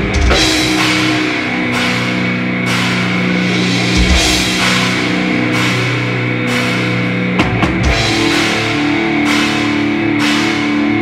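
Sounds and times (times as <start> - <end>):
cymbal wash: 0.0 - 11.0
distorted electric guitar chords: 0.0 - 11.0
drums: 0.0 - 11.0.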